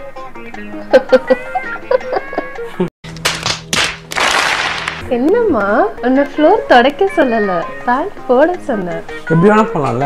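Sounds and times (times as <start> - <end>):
crowd applause: 4.1 - 5.0.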